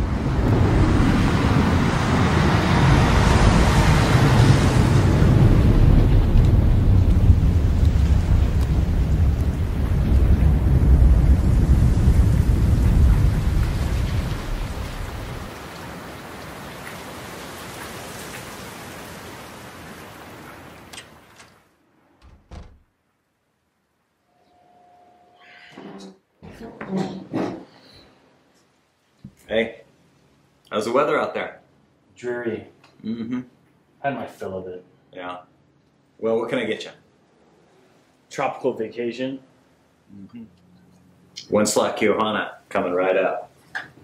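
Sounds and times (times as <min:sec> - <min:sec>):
rolling rumble of thunder: 0:00.0 - 0:15.5
heavy rain: 0:00.0 - 0:21.7
low thumps: 0:22.2 - 0:22.9.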